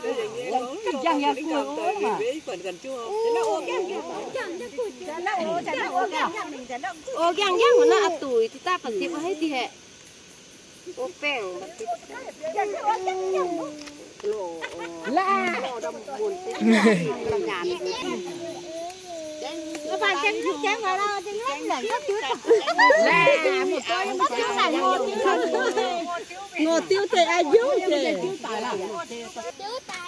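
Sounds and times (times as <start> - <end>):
women calling out: 0.0 - 8.5, 11.6 - 29.0
women talking over one another: 19.5 - 29.6.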